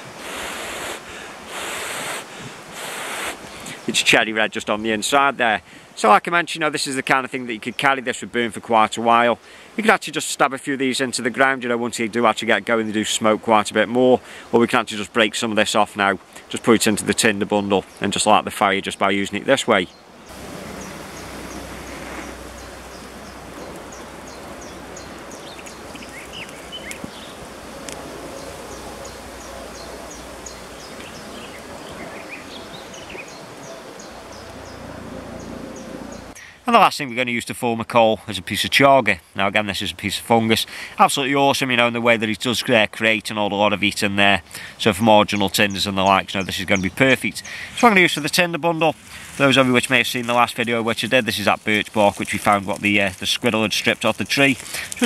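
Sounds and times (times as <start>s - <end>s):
man blowing puffs of breath: 0.0s - 3.9s, 9.4s - 9.8s, 14.2s - 14.6s, 36.4s - 36.7s, 40.7s - 41.0s, 44.5s - 44.8s, 47.4s - 47.8s, 54.6s - 55.0s
steady hiss: 0.0s - 37.4s, 43.8s - 55.0s
lower bird chirps: 19.8s - 36.4s
faint clicks: 21.5s - 27.2s, 27.8s - 28.0s.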